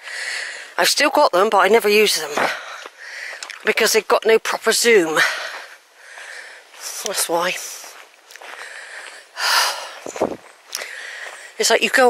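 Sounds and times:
woman speaking: 0:00.8 - 0:02.6, 0:03.6 - 0:05.4, 0:06.8 - 0:07.9, 0:11.6 - 0:12.0.

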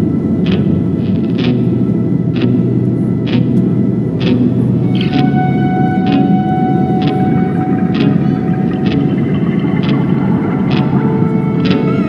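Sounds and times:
aircraft cabin and jet engine roar: 0:00.0 - 0:12.0.

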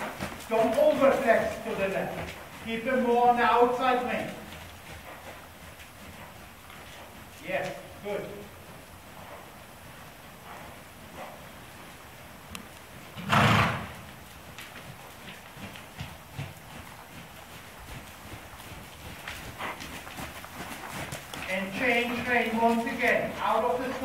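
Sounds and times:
horse hoofbeats on soft footing: 0:00.0 - 0:24.0.

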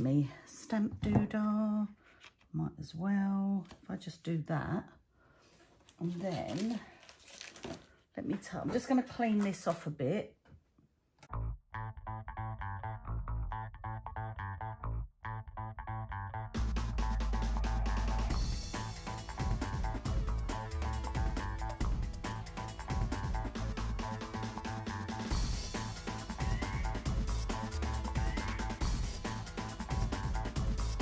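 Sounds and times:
background music with steady beat: 0:16.6 - 0:31.0.

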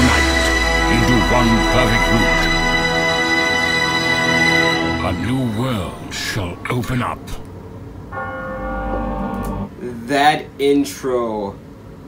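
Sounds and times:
man narrating: 0:00.0 - 0:02.8, 0:04.9 - 0:07.5
deep bell tone: 0:00.0 - 0:06.7, 0:08.0 - 0:09.8.

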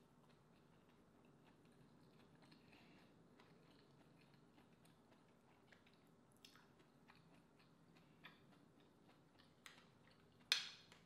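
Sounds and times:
closed-mouth chewing: 0:00.2 - 0:10.5.

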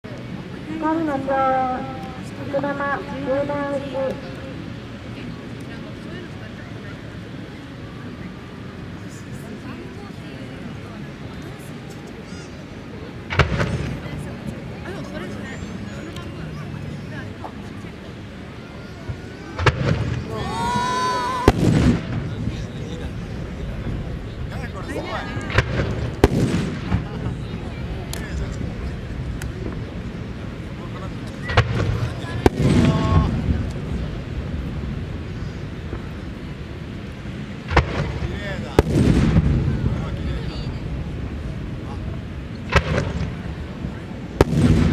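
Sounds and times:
crowd chattering: 0:00.0 - 0:44.9
long rolling rumble: 0:12.7 - 0:44.9
firework shells booming: 0:13.3 - 0:14.0, 0:21.4 - 0:22.5, 0:25.5 - 0:27.3, 0:31.5 - 0:33.5, 0:37.7 - 0:39.8, 0:44.4 - 0:44.9.

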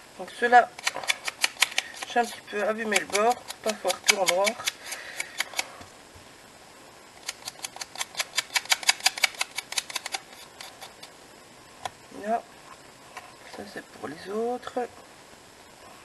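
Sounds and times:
tape runner clicking: 0:00.7 - 0:05.6, 0:07.2 - 0:11.1.

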